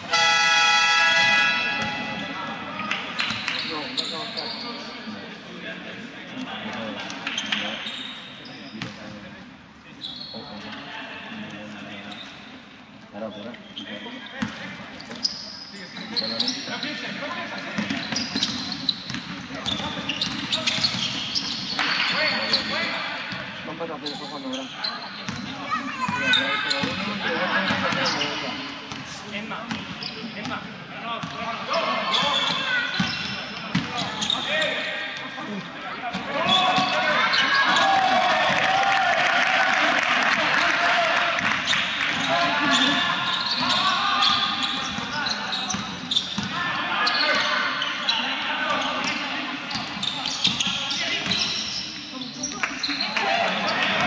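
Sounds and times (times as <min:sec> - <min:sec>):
basketball bouncing on court: 0:01.3 - 0:02.3, 0:17.8 - 0:22.0, 0:26.2 - 0:27.1, 0:28.9 - 0:30.6, 0:31.2 - 0:31.4, 0:32.4 - 0:34.3, 0:45.7 - 0:46.6.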